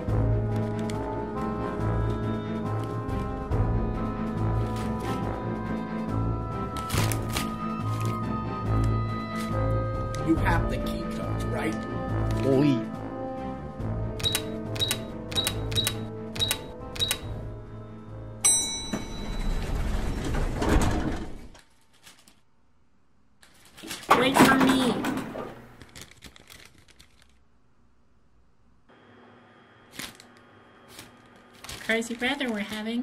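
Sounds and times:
background music: 0:00.0 - 0:20.0
keypad beeping: 0:14.2 - 0:17.4.

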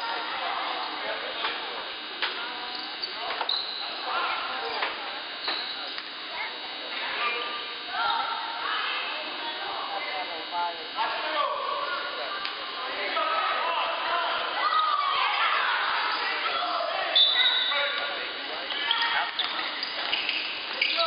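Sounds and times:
people calling out: 0:11.2 - 0:20.0.

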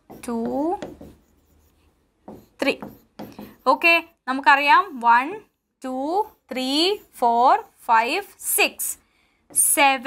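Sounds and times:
pen scratching on a screen: 0:00.0 - 0:05.0, 0:05.9 - 0:07.8.

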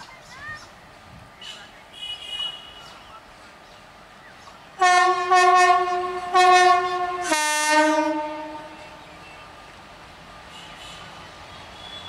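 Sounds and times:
train air horn blasts: 0:04.8 - 0:09.0.

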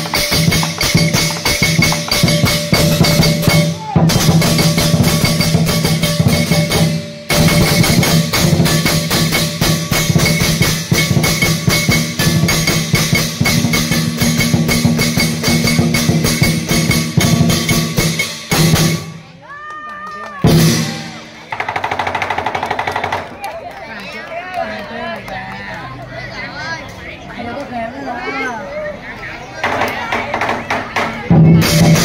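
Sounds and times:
fast drum roll: 0:00.0 - 0:19.1, 0:20.4 - 0:23.3, 0:29.6 - 0:32.0
big drum beating: 0:00.0 - 0:19.2, 0:20.4 - 0:23.2, 0:29.6 - 0:32.0
clashing cymbals: 0:00.0 - 0:19.2
voices: 0:19.2 - 0:32.0.

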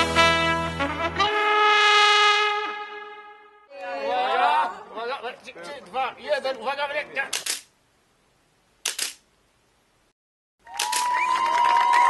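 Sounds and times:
phone camera shutter: 0:07.3 - 0:07.7, 0:08.8 - 0:09.2, 0:10.8 - 0:11.1
crowd clapping and cheering: 0:10.6 - 0:12.0.

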